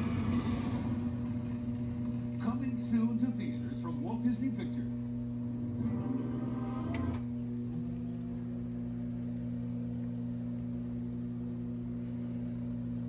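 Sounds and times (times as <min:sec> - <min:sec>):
steady electrical hum: 0:00.0 - 0:13.0.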